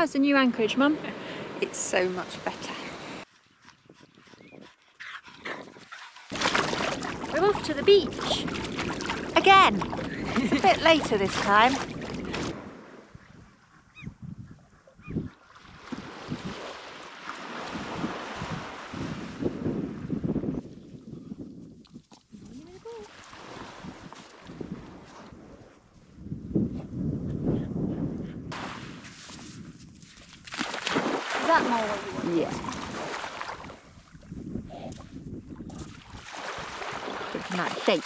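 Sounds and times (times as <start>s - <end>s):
gusty wind: 0.0s - 38.0s
small waves washing onto sand: 6.3s - 13.1s, 15.5s - 20.3s, 22.6s - 25.5s, 28.5s - 34.2s, 35.7s - 38.0s.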